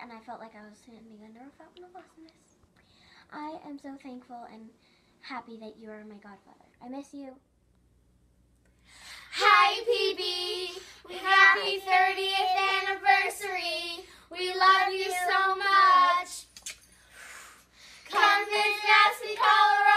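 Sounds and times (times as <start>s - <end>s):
girls singing unaccompanied: 9.3s - 16.4s, 18.1s - 19.9s.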